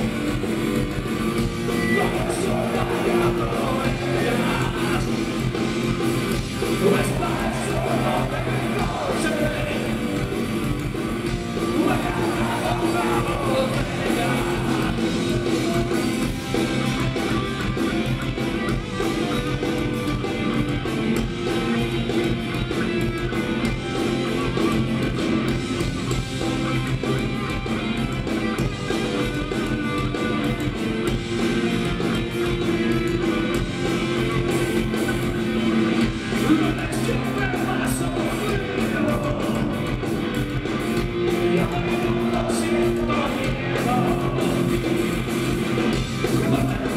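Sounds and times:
drum kit: 0:00.0 - 0:46.9
electric guitars: 0:00.0 - 0:46.9
person singing: 0:01.8 - 0:05.4, 0:06.6 - 0:10.3, 0:11.6 - 0:16.1, 0:36.4 - 0:39.9, 0:41.3 - 0:44.8.

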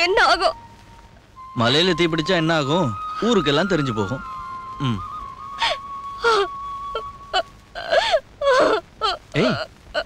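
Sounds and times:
young woman sobbing: 0:04.8 - 0:10.0.

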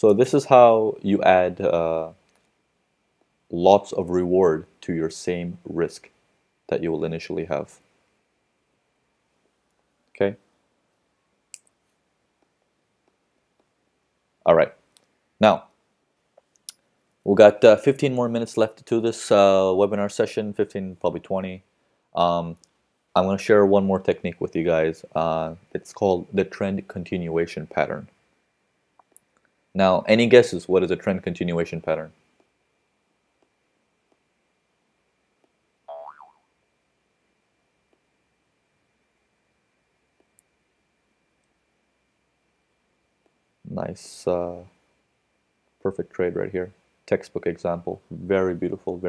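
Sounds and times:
electronic boing alert: 0:35.9 - 0:36.5.

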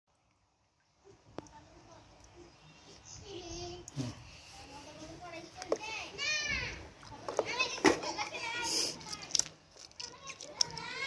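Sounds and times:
child talking: 0:01.1 - 0:09.4, 0:10.0 - 0:11.0.

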